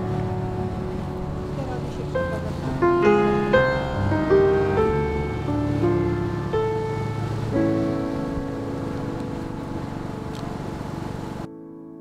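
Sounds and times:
steady hiss: 0.0s - 11.5s
slow piano music: 0.0s - 12.0s.

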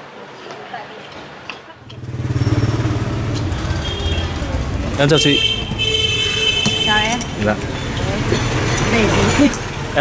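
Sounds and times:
motorbike engine running: 1.8s - 6.1s.

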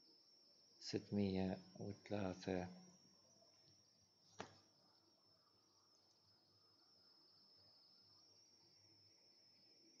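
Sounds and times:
high-pitched whine: 0.0s - 10.0s.

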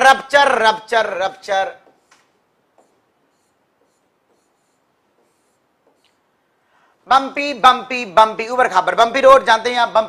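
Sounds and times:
scratching of writing on board: 1.8s - 6.2s.

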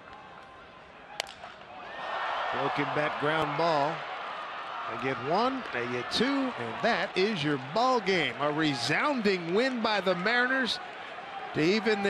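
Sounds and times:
stadium crowd murmur: 0.0s - 12.0s
baseball bat cracking: 1.1s - 1.7s.

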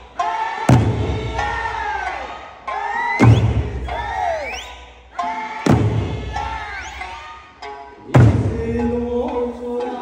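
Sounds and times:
big drum strikes: 0.7s - 1.6s, 5.7s - 6.5s, 8.2s - 8.7s.

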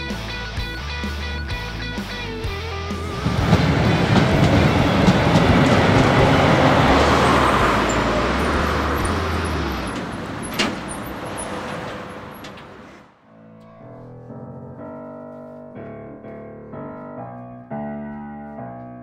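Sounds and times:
tram rumbling past: 2.9s - 13.1s.

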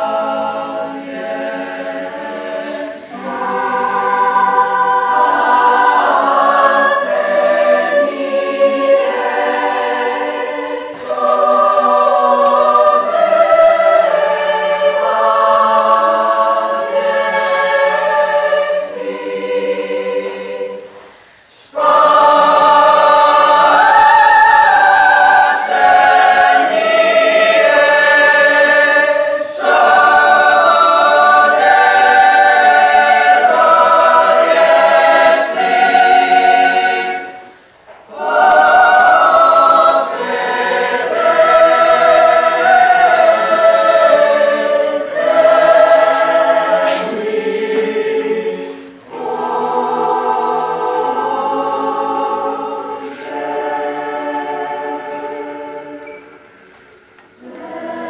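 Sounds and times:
choir singing in harmony: 0.0s - 58.0s.

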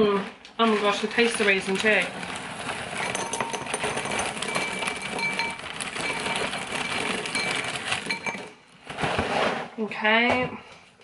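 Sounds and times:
cereal pouring into ceramic bowl: 1.1s - 8.6s.

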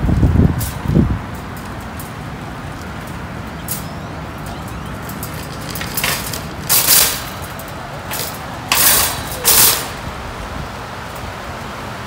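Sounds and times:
shopping cart rolling over concrete: 0.0s - 11.3s.

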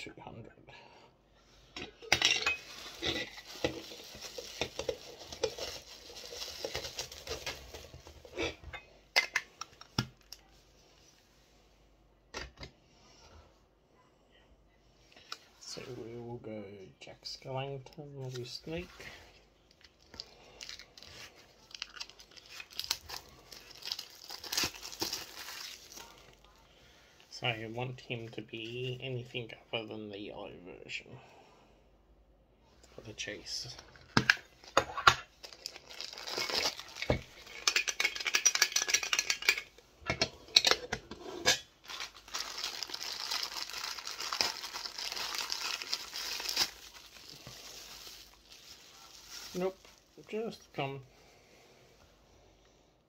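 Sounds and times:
packaging crinkling and tearing: 2.7s - 8.4s, 19.7s - 26.6s, 34.2s - 39.6s, 41.8s - 50.4s.

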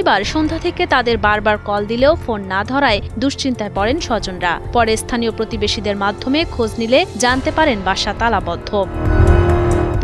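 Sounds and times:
person's voice: 0.0s - 8.9s.

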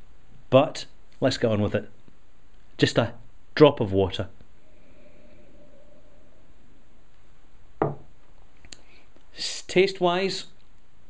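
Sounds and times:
glass set down on wood: 7.8s - 8.1s.

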